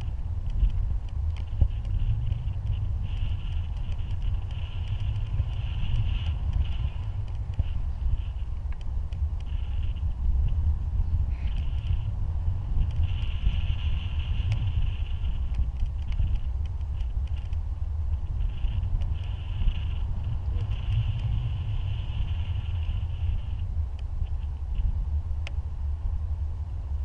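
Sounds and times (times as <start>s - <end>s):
higher wind hiss: 0.0s - 27.0s
wind rushing over microphone: 0.0s - 27.0s.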